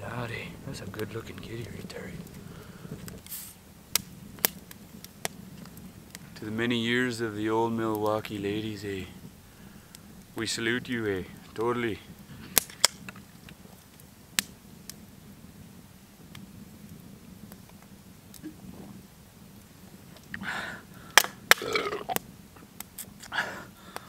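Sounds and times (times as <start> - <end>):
fire crackling and popping: 0.0 - 24.0
man breathing while drinking: 2.4 - 3.1, 20.3 - 21.4, 23.2 - 24.0.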